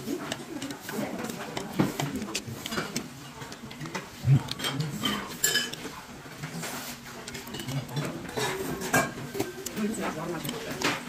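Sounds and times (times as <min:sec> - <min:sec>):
metal utensils clinking on bowl: 0:00.0 - 0:11.0.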